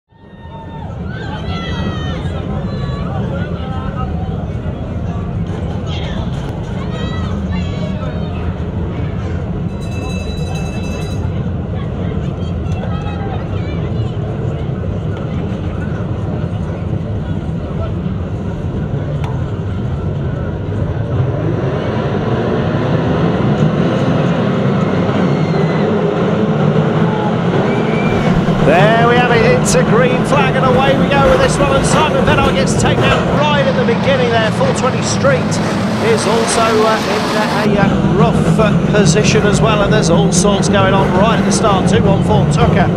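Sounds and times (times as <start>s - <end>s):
car engines idling and revving: 11.4s - 42.9s.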